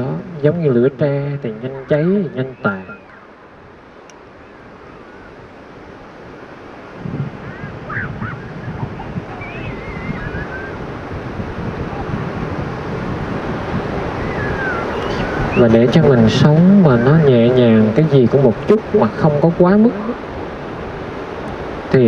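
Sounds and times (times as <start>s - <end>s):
ocean surf rushing: 0.0s - 22.0s
wind buffeting microphone: 0.0s - 22.0s.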